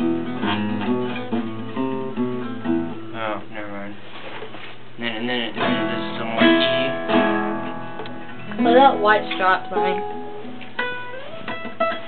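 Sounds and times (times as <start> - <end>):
acoustic guitar notes plucked: 0.0 - 3.8, 5.3 - 12.0.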